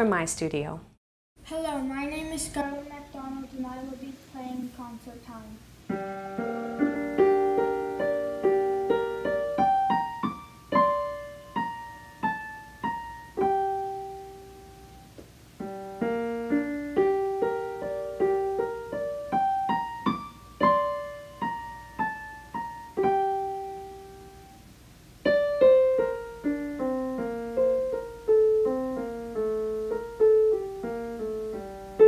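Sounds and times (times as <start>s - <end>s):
solo digital piano: 5.9s - 32.0s.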